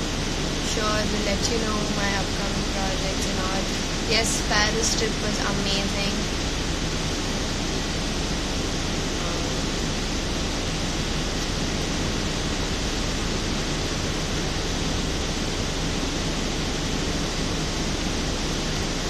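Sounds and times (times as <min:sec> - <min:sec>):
low hum: 0:00.0 - 0:19.0
steady rushing noise: 0:00.0 - 0:19.0.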